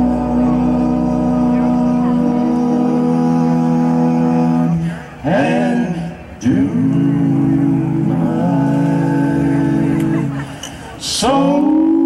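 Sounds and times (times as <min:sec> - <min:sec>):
voices singing in harmony: 0:00.0 - 0:12.0.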